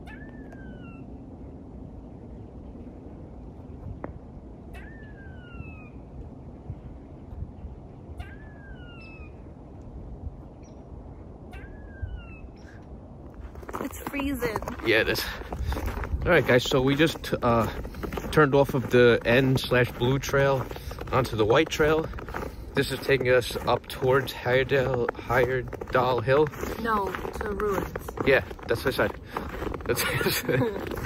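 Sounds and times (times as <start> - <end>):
squirrel calling: 0.0 - 1.2, 4.7 - 6.1, 8.1 - 9.5, 11.4 - 12.8.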